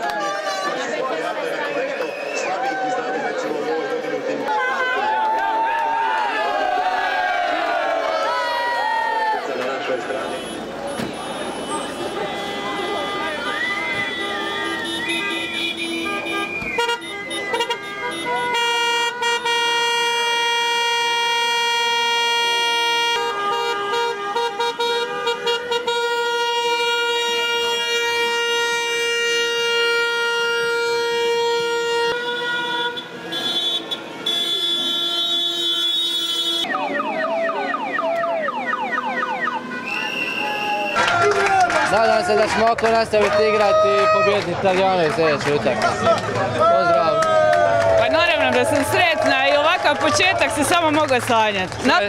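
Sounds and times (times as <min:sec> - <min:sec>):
voices shouting: 0:00.0 - 0:18.6, 0:36.6 - 0:42.6, 0:45.8 - 0:51.2
street noise: 0:00.0 - 0:52.0
car horns honking: 0:10.1 - 0:41.5.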